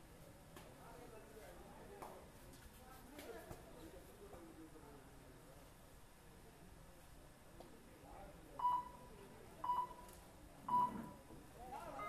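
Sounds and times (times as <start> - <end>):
short electronic beeps: 8.6 - 11.2.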